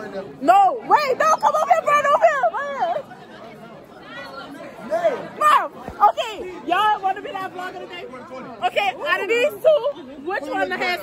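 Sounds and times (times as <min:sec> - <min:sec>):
background chatter: 0:00.0 - 0:11.0.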